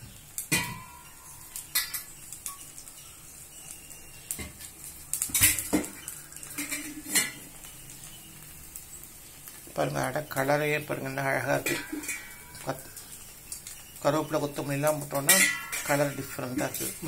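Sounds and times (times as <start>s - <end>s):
batter sizzling on hot griddle: 0.0s - 17.0s
metal utensils clinking on cookware: 0.5s - 8.1s, 10.3s - 17.0s.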